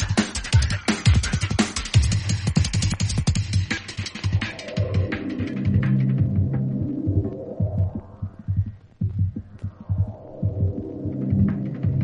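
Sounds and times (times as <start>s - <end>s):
techno drums and hi-hats: 0.0s - 12.0s
synth sweep: 4.1s - 8.6s
throbbing bass pulse: 4.3s - 12.0s.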